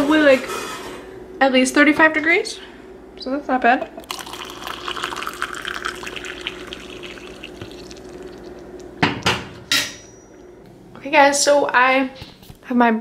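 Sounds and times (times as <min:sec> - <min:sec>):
water running: 0:03.8 - 0:09.0.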